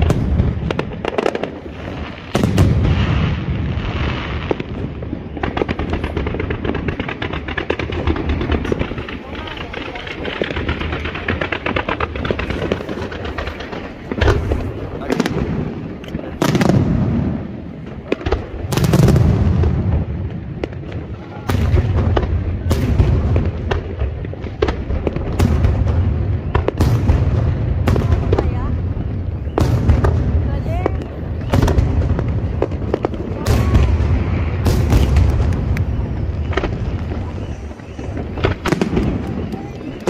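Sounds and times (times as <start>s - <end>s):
deep rumble of explosions: 0.0s - 40.0s.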